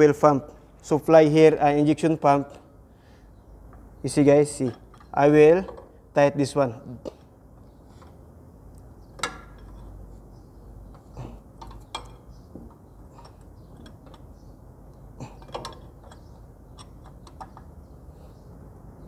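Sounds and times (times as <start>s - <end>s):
spanner clicking on metal fitting: 15.4s - 17.7s.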